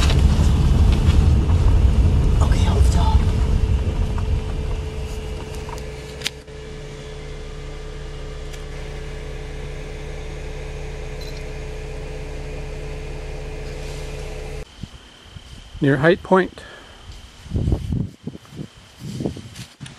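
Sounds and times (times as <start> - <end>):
car engine hum inside cabin: 0.0 - 14.7
faint held tone: 5.0 - 15.9.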